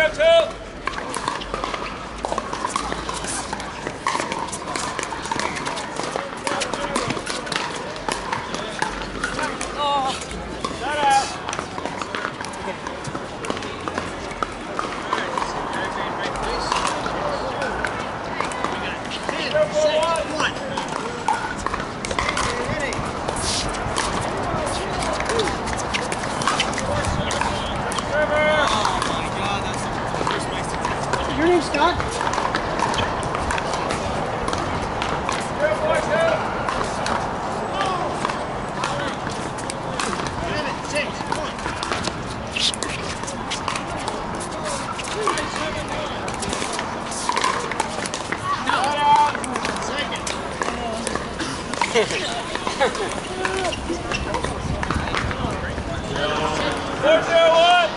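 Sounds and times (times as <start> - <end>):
background chatter of people: 0.0 - 57.9
paddles hitting plastic ball: 0.8 - 15.4, 17.8 - 55.4.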